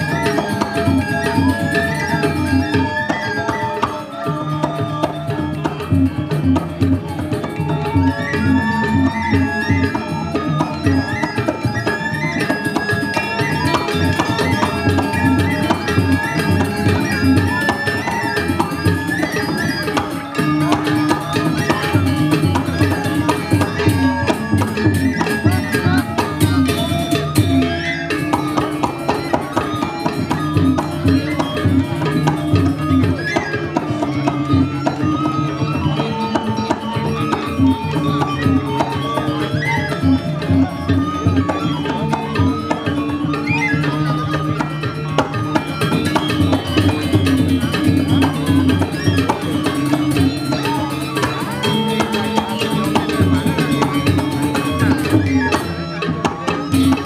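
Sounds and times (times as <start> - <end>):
drums beating: 0.0 - 57.0
gamelan music: 0.0 - 57.0
metallophones ringing melody: 0.0 - 57.0.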